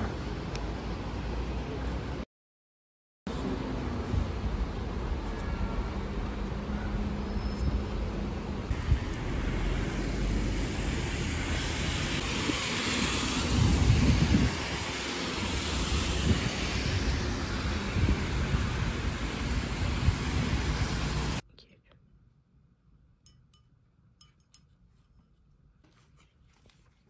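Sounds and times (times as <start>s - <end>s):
traffic on wet road: 3.3s - 21.4s
rain on pavement: 8.7s - 21.4s
wind rumble on microphone: 8.7s - 21.4s.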